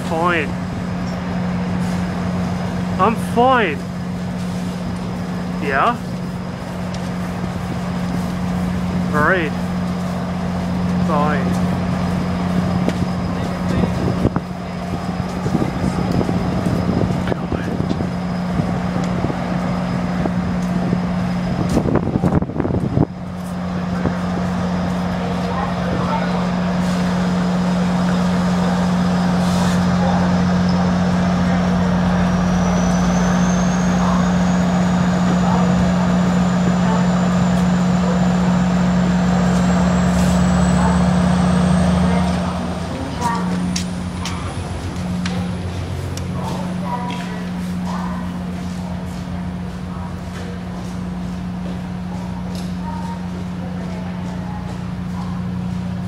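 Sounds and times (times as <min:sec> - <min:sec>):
train low hum: 0:00.0 - 0:56.0.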